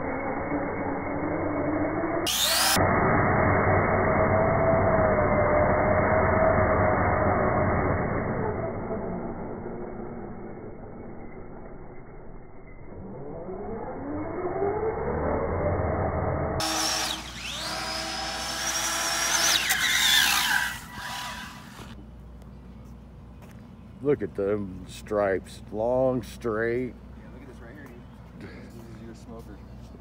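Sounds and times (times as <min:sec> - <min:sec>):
electric motor whining: 0:00.0 - 0:09.6, 0:13.3 - 0:22.0
tires spinning on asphalt: 0:00.0 - 0:10.2, 0:13.0 - 0:22.0
louder higher whine: 0:00.0 - 0:22.0.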